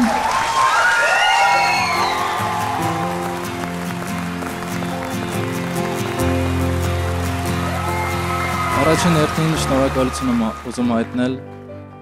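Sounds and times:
sustained chords music: 2.2s - 12.0s.

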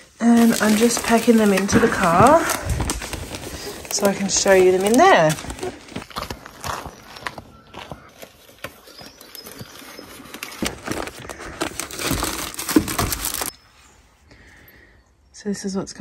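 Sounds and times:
cellophane crinkling: 0.0s - 7.4s, 8.1s - 13.5s
footsteps through dry grass: 0.0s - 13.4s.

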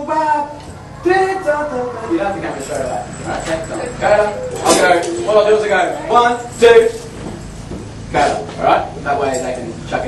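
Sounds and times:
voices talking indistinctly: 0.0s - 10.0s.

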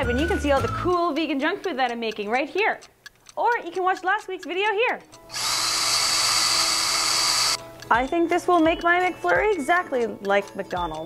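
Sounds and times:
power drill running: 5.3s - 7.6s.

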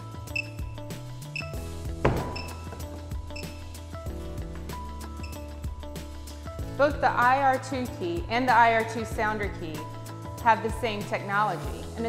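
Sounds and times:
background music: 0.0s - 12.0s
sharp knock: 2.0s - 2.8s.

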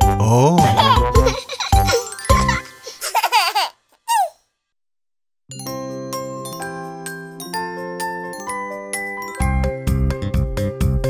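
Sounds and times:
children's song with bass line: 0.0s - 2.7s
cartoon babies giggling: 0.5s - 4.4s.

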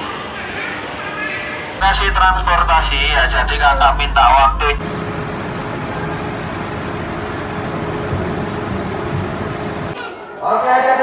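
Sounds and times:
constant whining tone: 1.8s - 4.8s
train humming: 1.8s - 4.8s.

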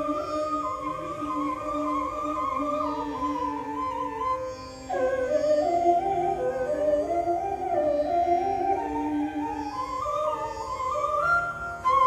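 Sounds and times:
bamboo flute melody: 0.0s - 12.0s
violin accompaniment: 0.0s - 12.0s.

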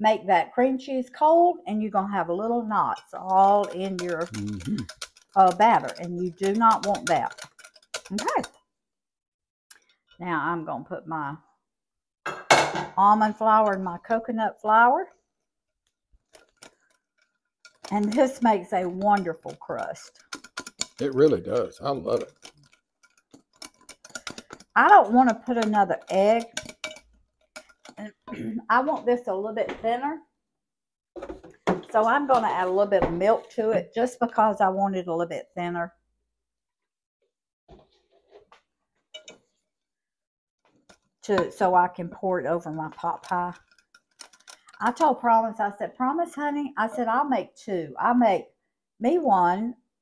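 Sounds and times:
utensil stirring batter in glass bowl: 2.8s - 8.6s, 13.2s - 14.2s, 15.1s - 28.2s, 40.7s - 45.6s.

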